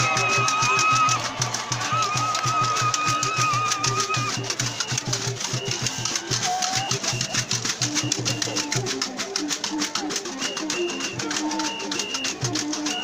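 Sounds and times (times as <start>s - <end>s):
calabashes and drums beating: 0.0s - 13.0s.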